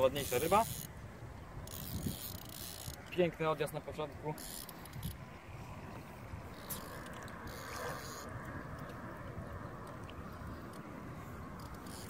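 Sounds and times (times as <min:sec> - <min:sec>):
fishing reel whirring: 0:00.0 - 0:05.4, 0:06.1 - 0:08.9, 0:10.0 - 0:12.0.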